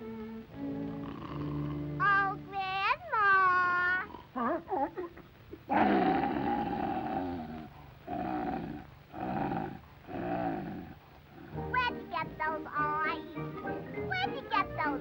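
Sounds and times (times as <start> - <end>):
cartoon wolf growl: 0.8 - 2.0, 5.7 - 11.5.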